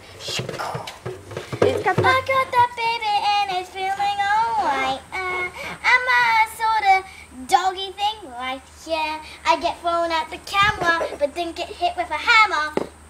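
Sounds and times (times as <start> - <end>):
child singing unaccompanied: 1.5 - 12.9.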